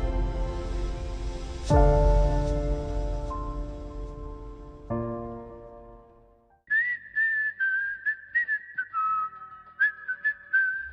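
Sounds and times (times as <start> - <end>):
high whistled melody: 6.7 - 10.9.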